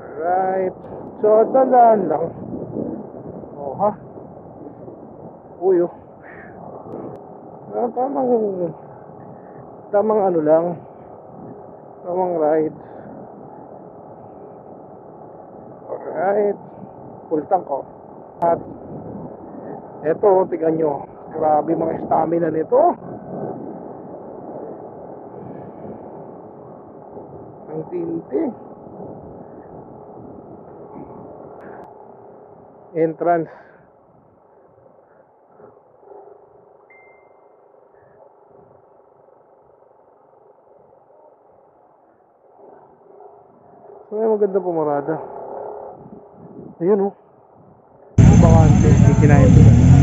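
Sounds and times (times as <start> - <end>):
wind rush: 0.0 - 32.9, 45.8 - 46.8, 47.5 - 50.0
motorcycle engine running: 48.2 - 50.0.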